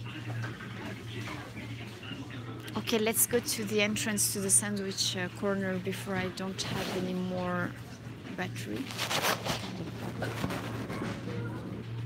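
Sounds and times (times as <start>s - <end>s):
rustling against puffer jacket: 8.7s - 11.4s.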